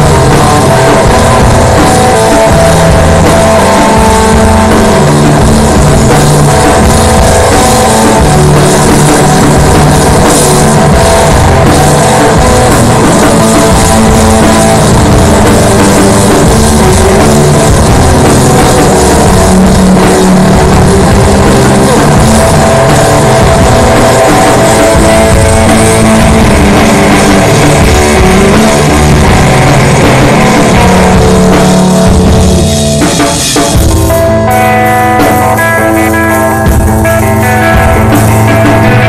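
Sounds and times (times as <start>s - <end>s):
distorted electric guitar: 0.0s - 39.0s
drum kit: 0.0s - 39.0s.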